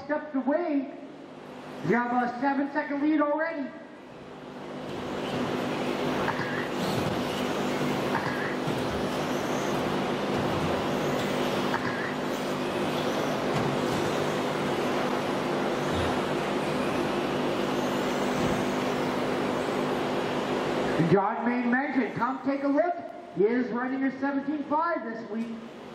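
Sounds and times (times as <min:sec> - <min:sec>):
constant hum: 0:00.0 - 0:25.9
faint motor whines: 0:00.0 - 0:25.9
radio-controlled cars racing: 0:05.2 - 0:15.1, 0:15.8 - 0:19.9.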